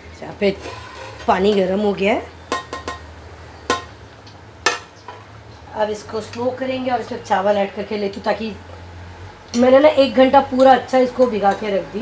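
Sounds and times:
pot lid clanking: 2.5 - 3.1.

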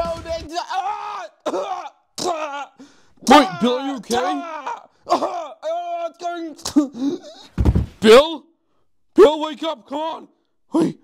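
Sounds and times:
man coughing and groaning: 1.4 - 2.8, 3.4 - 5.7, 6.6 - 7.6.

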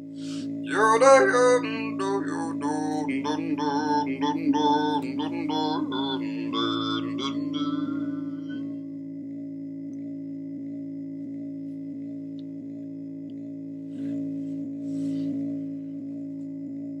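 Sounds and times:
looped sung vocal drone: 0.0 - 9.0, 13.9 - 16.1
breathy hiss: 0.2 - 0.6.

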